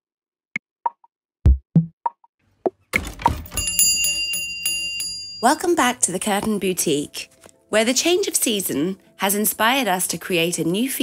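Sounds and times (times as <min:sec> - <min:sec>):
shop door bell jangling: 0:03.2 - 0:06.0.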